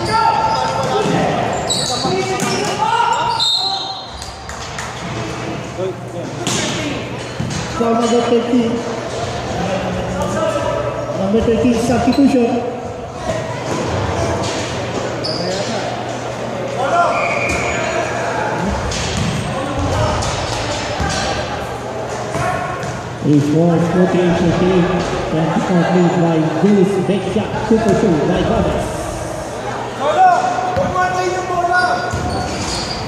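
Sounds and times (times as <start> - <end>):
voices of players and onlookers: 0.0 - 33.0.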